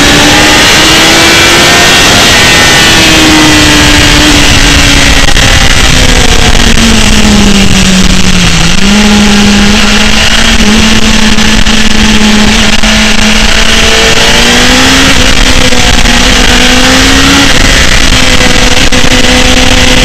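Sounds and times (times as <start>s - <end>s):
heavy wind noise: 0.0s - 20.0s
motorcycle engine at high revs: 0.0s - 20.0s.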